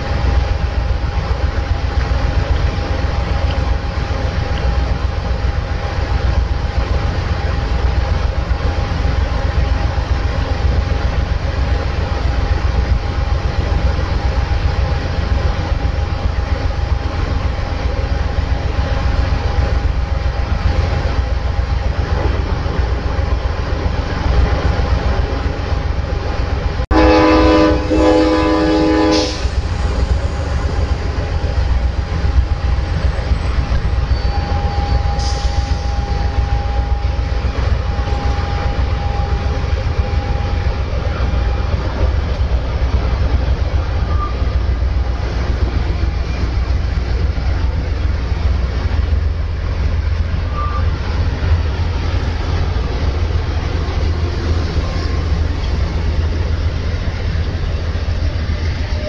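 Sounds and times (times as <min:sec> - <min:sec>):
train engine rumble: 0:00.0 - 0:59.0
train horn blast: 0:26.9 - 0:29.6.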